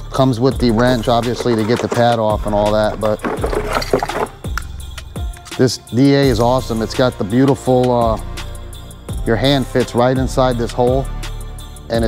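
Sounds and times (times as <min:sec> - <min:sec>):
background music: 0:00.0 - 0:12.0
cardboard packaging rustling: 0:01.4 - 0:04.4.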